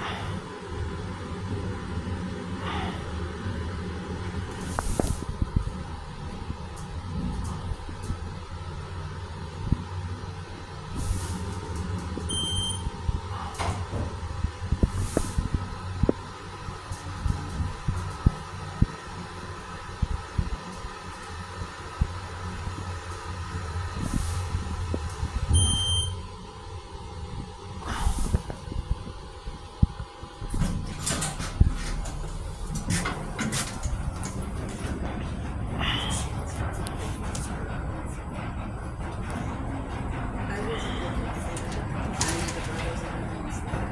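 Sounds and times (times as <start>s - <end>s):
elevator hum: 0.0s - 43.9s
elevator doors sliding open: 10.7s - 15.9s, 30.4s - 43.9s.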